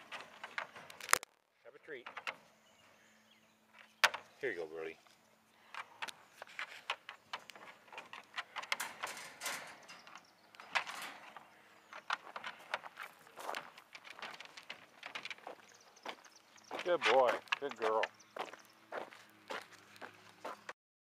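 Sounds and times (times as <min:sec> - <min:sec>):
dogs rattling wire kennel: 0:07.7 - 0:11.4.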